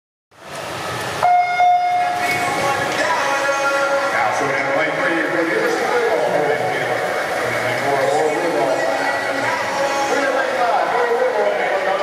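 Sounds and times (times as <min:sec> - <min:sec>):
steady background noise: 0:00.4 - 0:12.0
electronic starting horn tone: 0:01.2 - 0:02.2.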